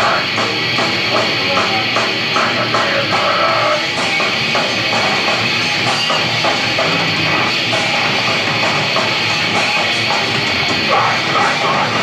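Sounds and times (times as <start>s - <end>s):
distorted electric guitars: 0.0s - 12.0s
drum kit pounding: 0.0s - 12.0s.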